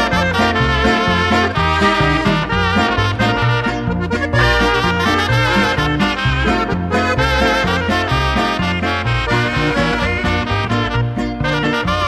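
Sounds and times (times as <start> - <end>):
stepping bass line: 0.0 - 12.0
trumpets playing melody: 0.0 - 12.0.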